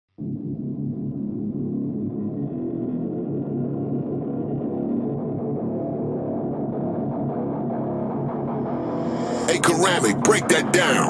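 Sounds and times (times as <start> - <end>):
muffled distorted guitar riff: 0.2 - 11.0.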